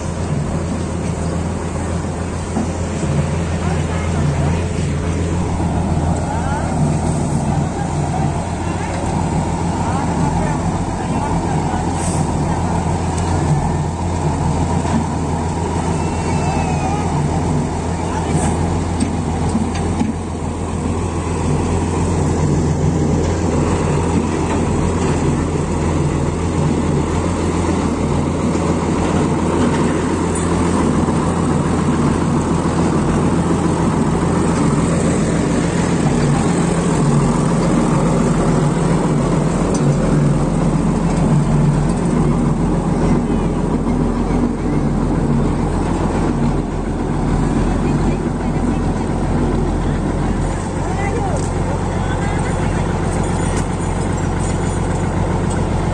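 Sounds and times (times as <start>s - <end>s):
road roller diesel engine running: 0.0s - 55.9s.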